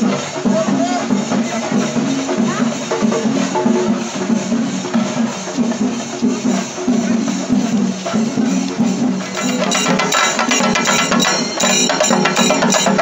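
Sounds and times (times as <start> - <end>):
drum-led percussion music: 0.0 - 13.0.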